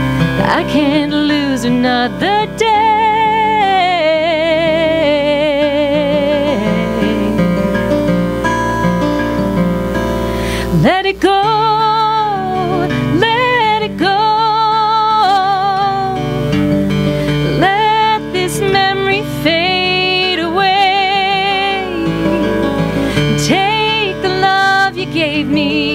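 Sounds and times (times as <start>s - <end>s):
acoustic guitar: 0.0s - 25.9s
woman singing: 0.3s - 8.0s, 10.6s - 16.6s, 17.3s - 25.9s.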